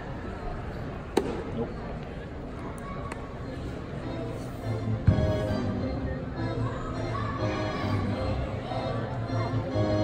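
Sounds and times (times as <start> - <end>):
low background murmur: 0.0 - 10.0.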